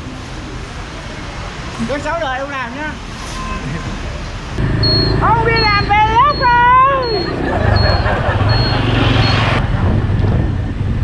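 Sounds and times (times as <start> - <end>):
road and wind noise: 0.0 - 11.0
motorbike engine hum: 4.6 - 11.0.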